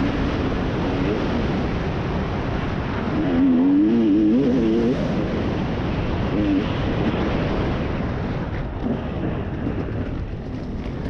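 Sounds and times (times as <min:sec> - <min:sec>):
dirt bike engine revving: 0:03.1 - 0:05.1.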